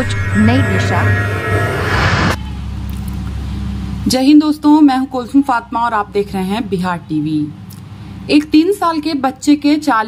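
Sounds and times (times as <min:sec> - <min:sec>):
swoosh: 0:00.0 - 0:02.8
steady low rumble: 0:00.0 - 0:07.5.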